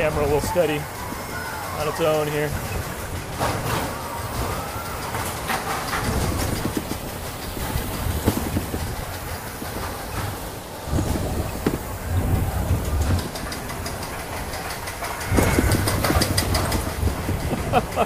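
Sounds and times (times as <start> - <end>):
coaster car rumbling on track: 0.0 - 18.0
sharp clicks and rattles: 0.0 - 18.0.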